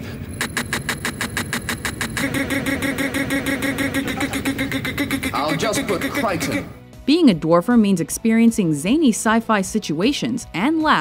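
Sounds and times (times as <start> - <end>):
steady hum: 0.0 - 6.8.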